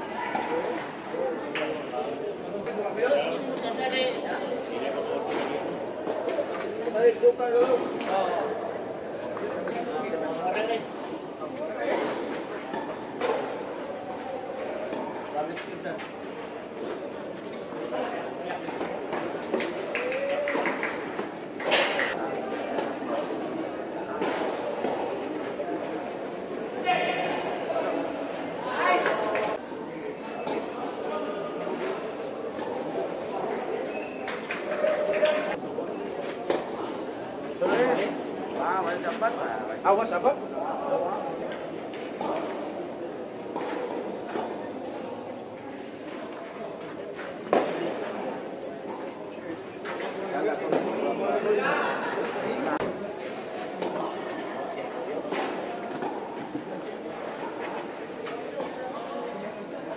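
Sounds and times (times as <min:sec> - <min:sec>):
chatter of onlookers: 0:00.0 - 0:59.9.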